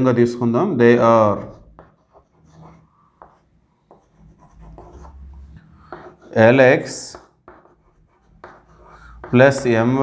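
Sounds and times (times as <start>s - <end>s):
chalk scratching on chalkboard: 1.4s - 10.0s.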